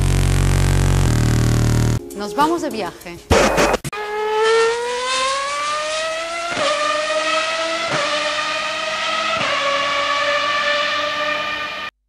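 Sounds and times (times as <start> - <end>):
race car engine accelerating: 4.0 - 11.9.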